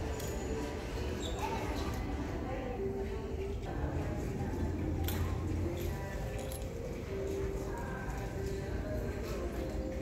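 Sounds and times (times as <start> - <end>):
light clicks and clinks: 0.0 - 0.9, 5.0 - 8.6
faint voices: 0.0 - 10.0.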